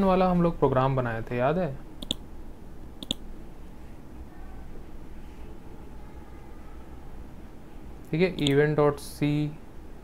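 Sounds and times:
computer mouse clicks: 2.0s - 2.2s, 3.0s - 3.2s, 8.4s - 8.6s.

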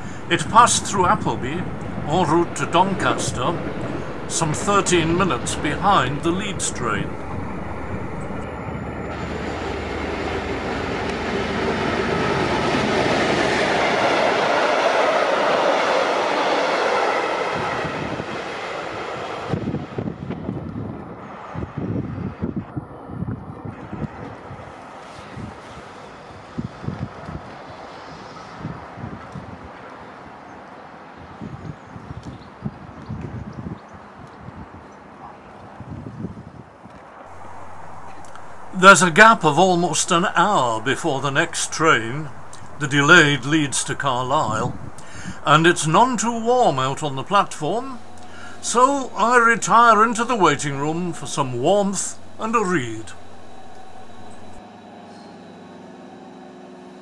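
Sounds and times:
diesel train passing: 0.0s - 23.1s, 23.7s - 31.4s, 37.2s - 57.0s.

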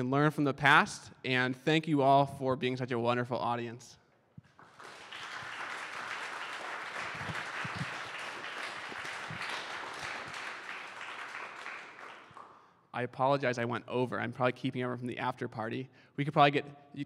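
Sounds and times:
audience applauding: 4.5s - 12.6s.

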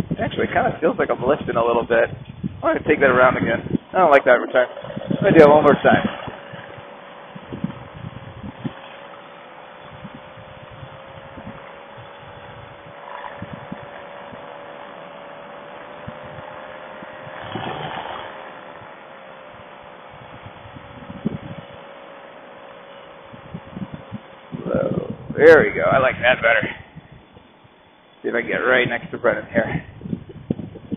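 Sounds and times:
paramotor engine hum: 0.0s - 30.9s
wind buffets: 0.0s - 30.9s.

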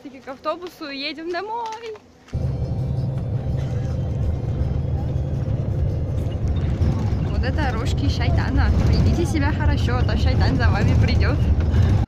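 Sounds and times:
bus engine and road rumble: 1.6s - 12.0s.

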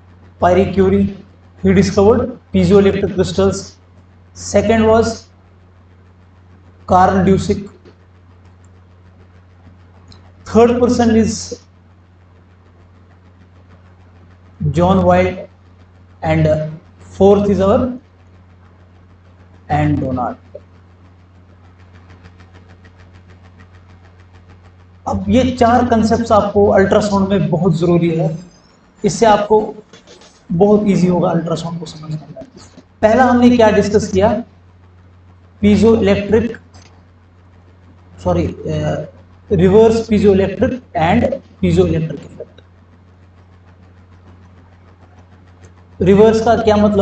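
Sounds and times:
low hum: 0.0s - 47.0s.

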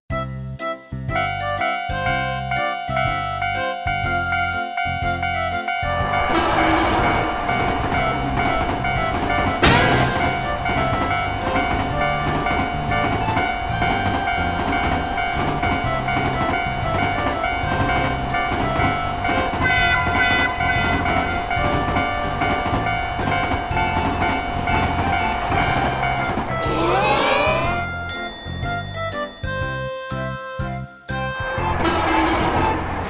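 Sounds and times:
background music held tone: 0.1s - 33.0s
train passing with rumble and clacking: 1.2s - 26.9s, 27.7s - 33.0s
rising glide sound effect: 26.6s - 27.8s.

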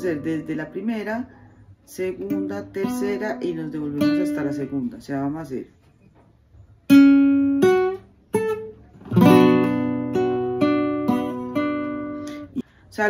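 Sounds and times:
classical guitar fingerstyle: 1.9s - 5.1s, 6.8s - 12.6s.

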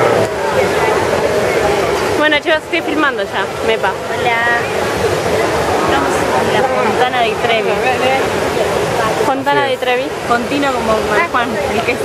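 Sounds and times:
crowd babble: 0.0s - 12.0s
fountain water falling: 0.0s - 12.0s.

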